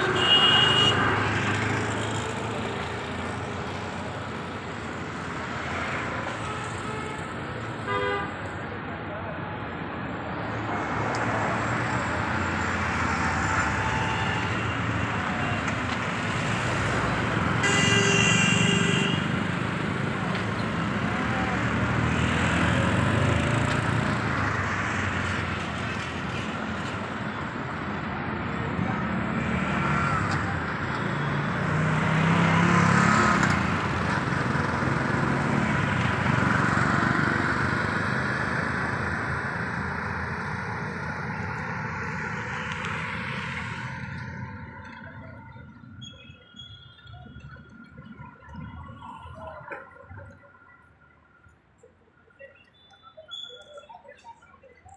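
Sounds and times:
vehicle horn: 0.0 - 1.2, 7.9 - 8.4, 17.6 - 19.4
city road traffic rumble: 0.0 - 54.9.

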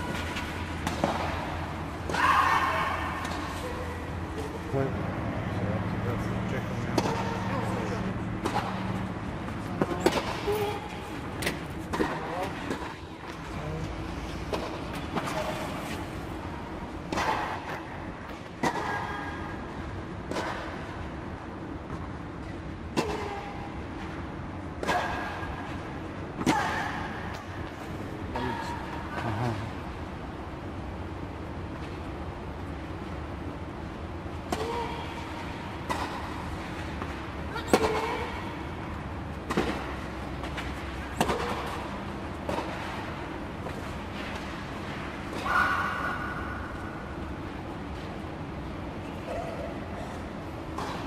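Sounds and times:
tennis balls struck by racquets: 0.0 - 4.5, 6.6 - 13.5, 14.4 - 22.2, 22.8 - 24.1, 24.7 - 27.7, 34.3 - 47.8
steady low hum: 0.0 - 51.0.

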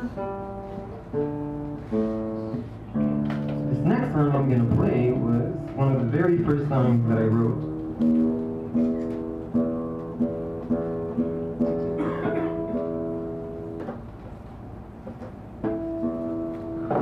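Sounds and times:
acoustic guitar arpeggio: 0.0 - 13.8, 15.6 - 17.0
guitar chord strummed: 0.0 - 13.8, 15.6 - 17.0.

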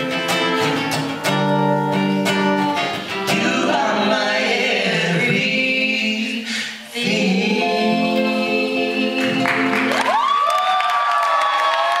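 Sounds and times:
scattered clapping: 9.4 - 12.0
audience cheering: 9.5 - 12.0
high-pitched screams: 9.9 - 12.0.

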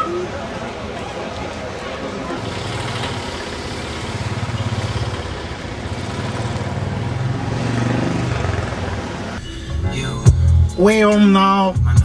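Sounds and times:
vehicle engine running: 2.4 - 9.4.

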